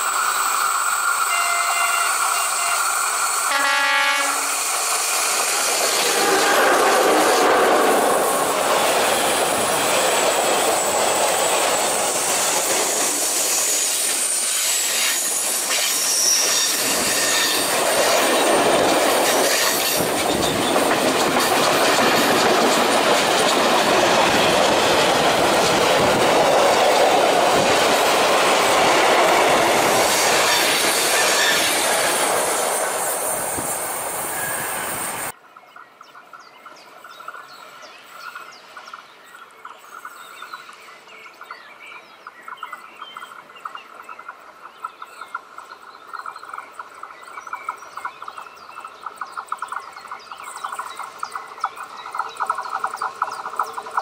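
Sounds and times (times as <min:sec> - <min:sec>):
train wheels on rails: 0:00.0 - 0:54.0
train horn blast: 0:01.3 - 0:04.6.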